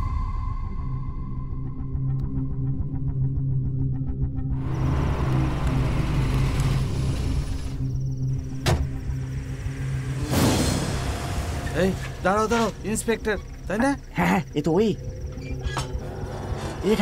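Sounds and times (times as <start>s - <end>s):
low musical drone: 0.0s - 17.0s
car noise: 4.6s - 14.2s.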